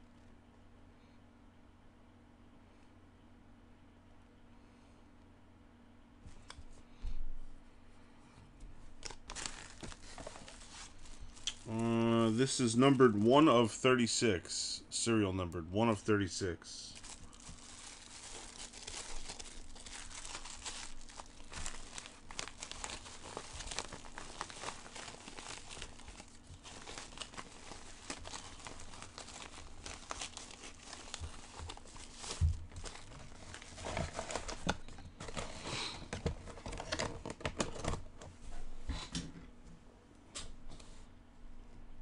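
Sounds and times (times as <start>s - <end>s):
plastic wrap crinkling and tearing: 9.0s - 12.6s, 16.8s - 38.0s.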